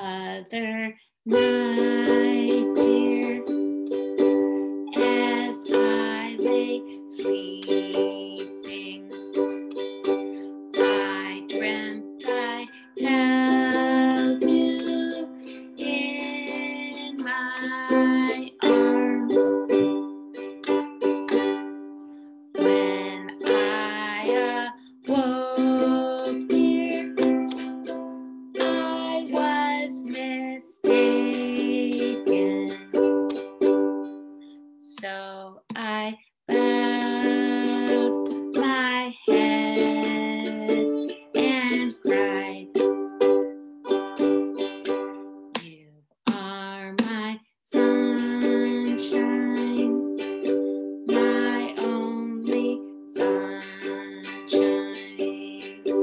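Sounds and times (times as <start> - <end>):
ukulele strumming: 0.0 - 56.0.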